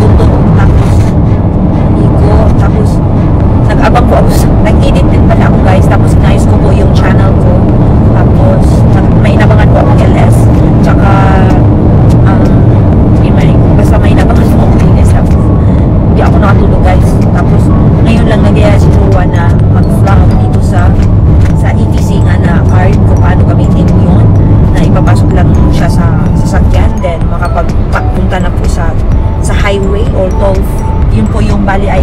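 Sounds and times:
car road and engine rumble: 0.0s - 32.0s
woman talking: 0.0s - 32.0s.

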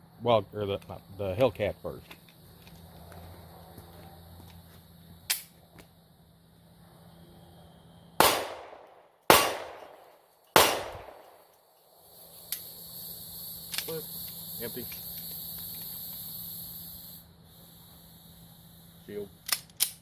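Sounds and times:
sharp click: 5.3s - 5.6s, 13.7s - 15.9s, 19.4s - 20.0s
pistol shots: 8.2s - 11.4s.

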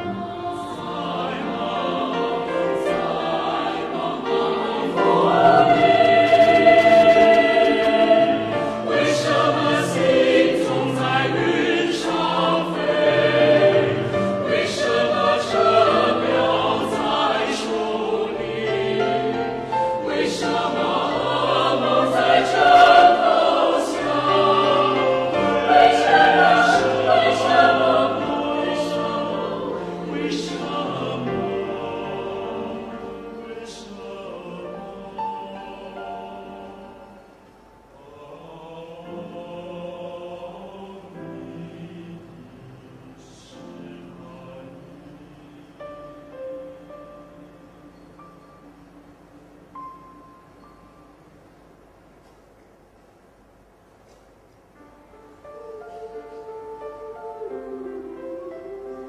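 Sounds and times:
mixed choir singing in harmony: 0.0s - 51.4s, 55.0s - 59.0s.

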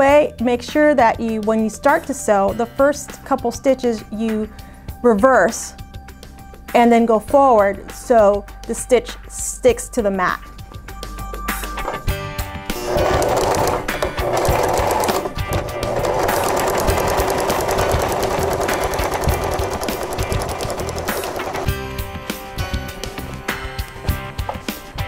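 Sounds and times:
sewing machine motor hum: 12.7s - 21.8s
sewing machine needle clicks: 12.8s - 21.7s.

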